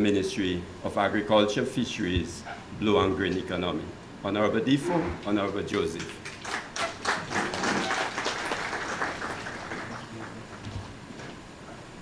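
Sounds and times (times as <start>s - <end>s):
audience applauding: 6.0s - 10.7s.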